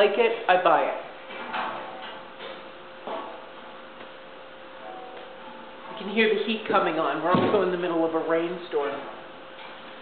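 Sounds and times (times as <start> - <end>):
heating hum: 0.0 - 10.0.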